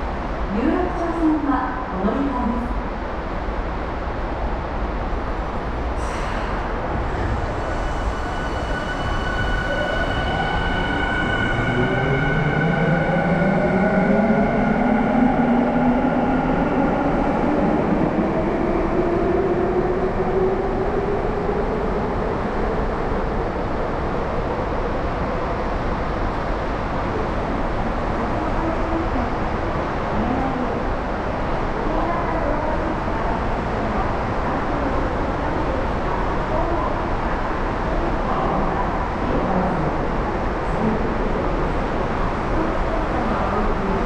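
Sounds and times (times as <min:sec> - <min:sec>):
train rumble: 0:00.0 - 0:44.0.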